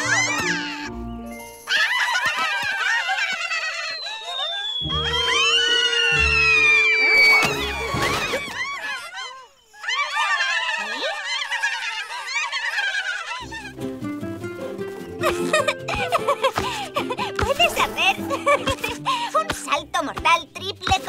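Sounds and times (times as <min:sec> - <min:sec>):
cartoon background music: 0:00.0 - 0:02.6, 0:04.6 - 0:08.8, 0:13.4 - 0:21.0
falling whistle-like glide: 0:03.3 - 0:10.8
squeaky cartoon voices chattering: 0:03.5 - 0:05.8, 0:17.4 - 0:21.0.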